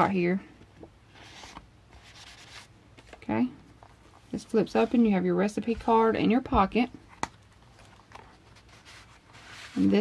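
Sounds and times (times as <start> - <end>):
paper rustling: 7.6 - 10.0.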